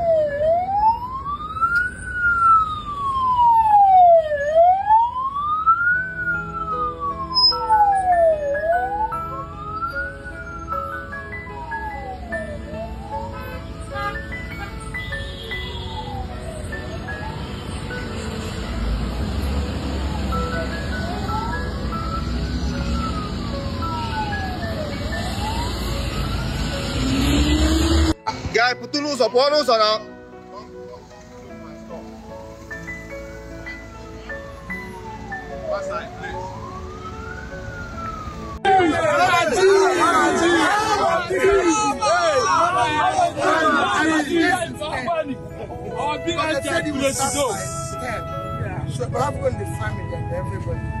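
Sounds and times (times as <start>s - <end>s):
lower rising siren tone: 0.0s - 13.3s, 18.8s - 28.2s, 34.4s - 41.6s
wailing siren: 0.0s - 18.2s, 18.8s - 28.2s, 31.7s - 44.8s, 46.3s - 51.0s
traffic rumble: 0.0s - 51.0s.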